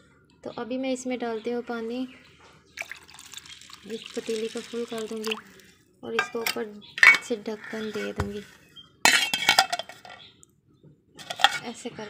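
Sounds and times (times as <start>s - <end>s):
metal lid clinking on pot: 6.2s - 7.3s, 9.1s - 10.2s, 11.2s - 11.7s.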